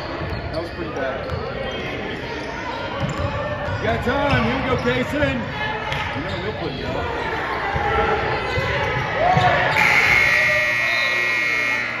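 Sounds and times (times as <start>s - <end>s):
players' voices: 0.0s - 12.0s
scoreboard buzzer: 9.8s - 12.0s.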